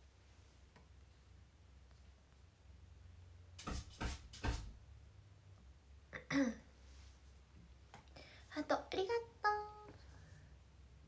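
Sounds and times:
woman clearing throat: 6.2 - 6.7.

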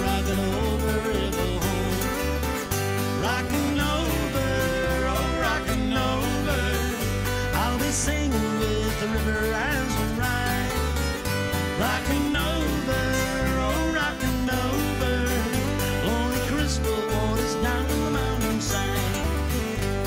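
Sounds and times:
acoustic guitars strumming: 0.0 - 20.0
bass line: 0.0 - 20.0
sliding lead guitar: 0.0 - 20.0.

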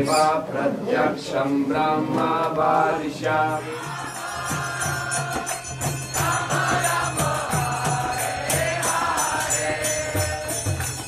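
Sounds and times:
jingling metal percussion: 3.4 - 11.0.

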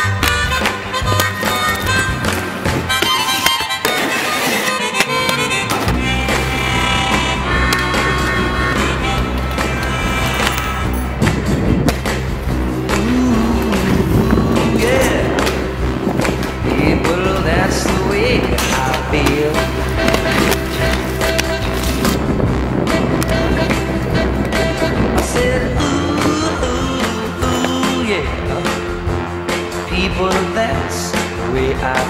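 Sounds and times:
skate wheels grinding on concrete: 0.0 - 30.8
loud rock song: 4.8 - 32.0.

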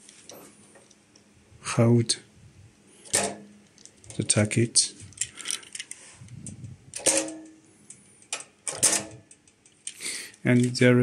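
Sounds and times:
metal parts clicking and clinking: 3.0 - 10.9.

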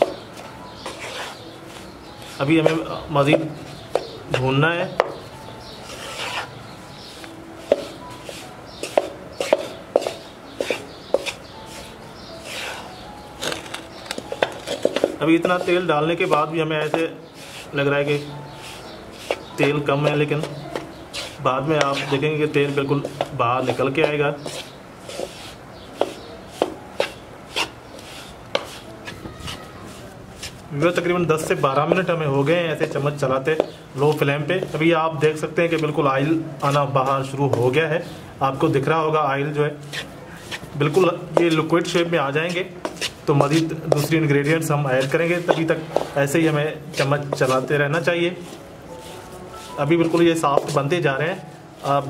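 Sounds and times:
wooden spatula scraping a pan: 0.0 - 38.2, 39.5 - 52.0.

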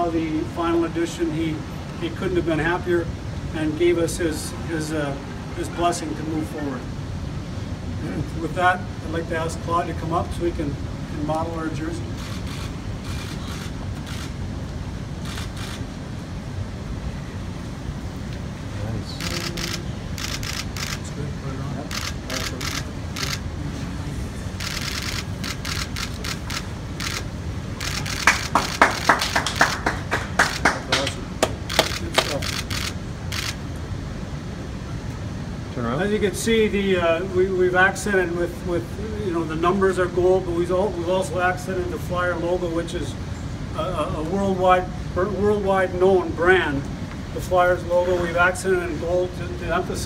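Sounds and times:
steady room hum: 0.0 - 50.0
camera shutters clicking: 12.2 - 14.4, 15.2 - 15.8, 19.2 - 21.0, 21.9 - 23.5, 24.6 - 29.7, 31.6 - 33.6.

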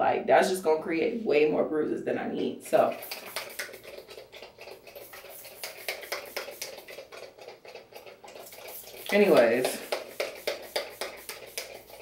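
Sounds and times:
pump spray bottle spritzing: 2.8 - 12.0.

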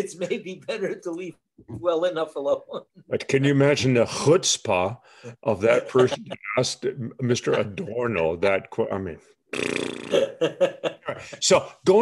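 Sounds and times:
man laughing heartily: 5.8 - 6.6, 10.2 - 11.4.

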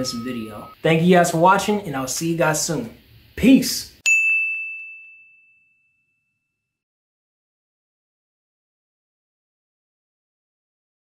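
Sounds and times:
bright ding: 0.0 - 0.8, 4.0 - 6.7.

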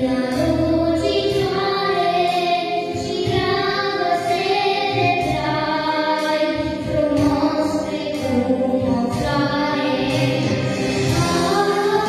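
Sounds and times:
girl singing into a microphone: 0.0 - 12.0
instrumental accompaniment: 0.0 - 12.0.

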